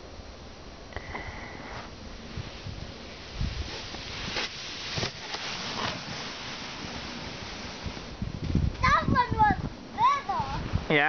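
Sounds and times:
sled scraping on snow: 0:01.6 - 0:08.2
sled bumps: 0:01.7 - 0:10.9.

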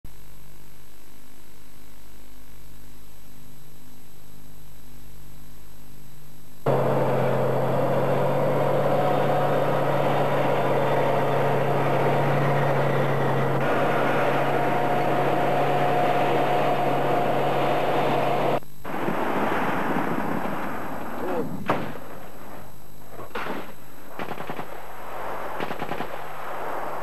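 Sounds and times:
tank engine running: 0:06.7 - 0:18.6.

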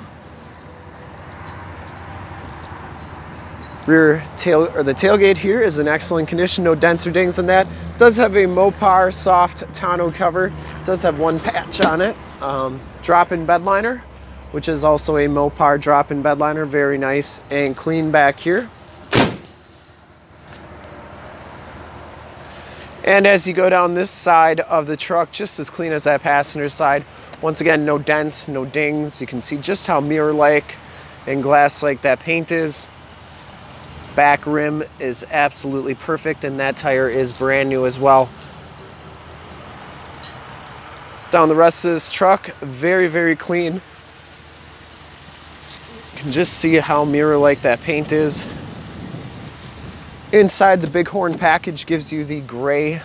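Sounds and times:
low outdoor rumble with hiss: 0:00.0 - 0:53.0
even hiss: 0:41.3 - 0:51.1.

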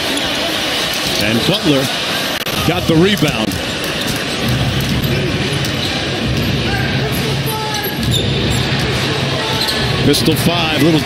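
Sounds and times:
low arena hum: 0:00.0 - 0:11.0.

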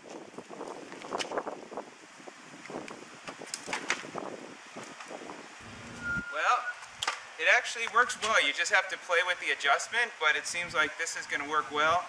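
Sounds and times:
wind buffeting microphone: 0:00.0 - 0:06.3.

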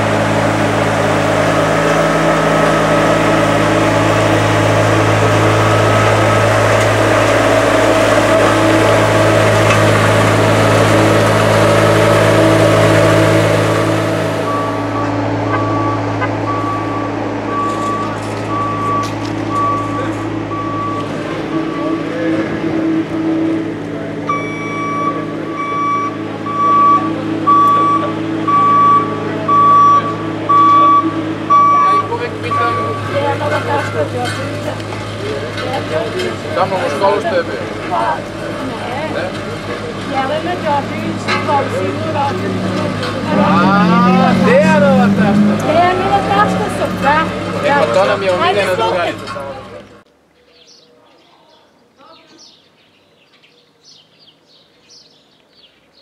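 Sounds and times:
road roller engine running: 0:00.0 - 0:50.1
reversing alarm beeping: 0:14.2 - 0:22.2, 0:24.2 - 0:34.0.

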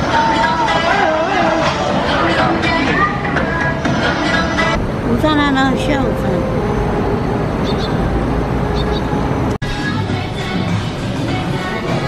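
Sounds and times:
traffic rumble: 0:01.2 - 0:12.0
people talking: 0:05.0 - 0:06.7.

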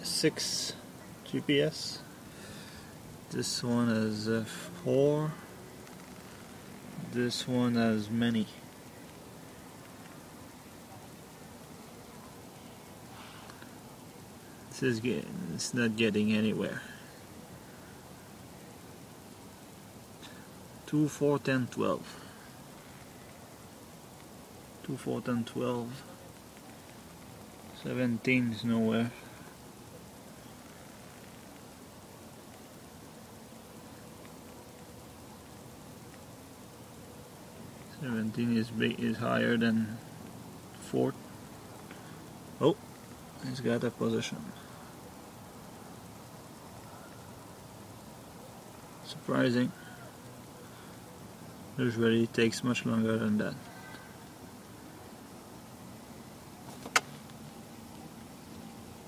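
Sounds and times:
faint background hiss: 0:00.0 - 0:59.0
faint steady hum: 0:00.0 - 0:59.0
faint ticks: 0:05.8 - 0:07.0, 0:08.6 - 0:10.3, 0:11.0 - 0:14.6, 0:22.2 - 0:24.9, 0:26.0 - 0:27.8, 0:29.1 - 0:38.0, 0:41.4 - 0:43.5, 0:53.6 - 0:54.8.

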